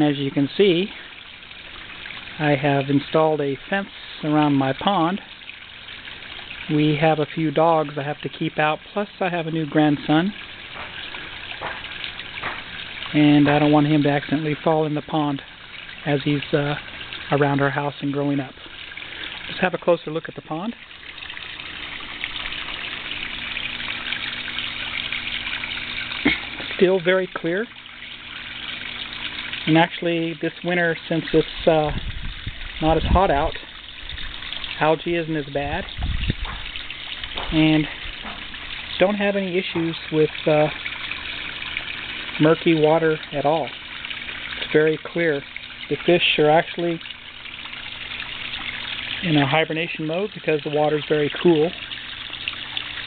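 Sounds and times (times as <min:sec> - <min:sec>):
waterfall splashing into pond: 0:00.0 - 0:53.0.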